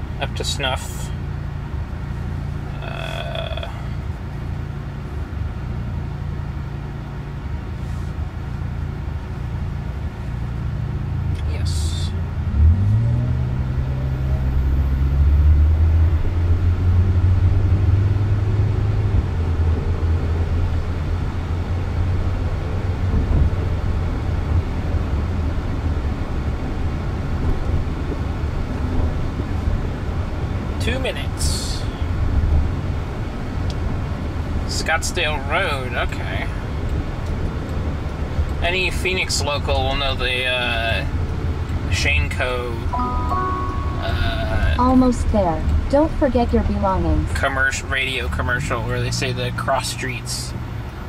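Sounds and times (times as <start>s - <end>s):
road noise: 0.0s - 51.0s
electric car low hum: 39.4s - 47.1s.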